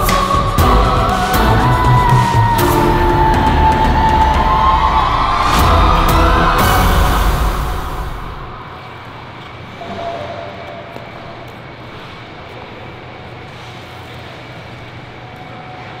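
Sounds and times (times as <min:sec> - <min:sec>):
program music: 0:00.0 - 0:08.8
air-handling machinery hum: 0:00.0 - 0:16.0.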